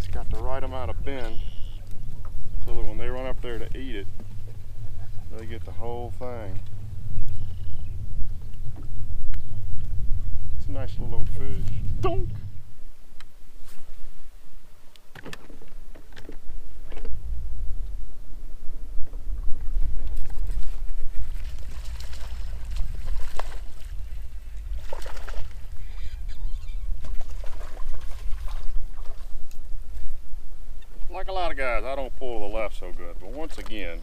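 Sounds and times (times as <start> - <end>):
water lapping against boat hull: 0.0 - 12.6, 19.0 - 30.2, 32.8 - 34.0
wind rumbling on microphone: 0.0 - 34.0.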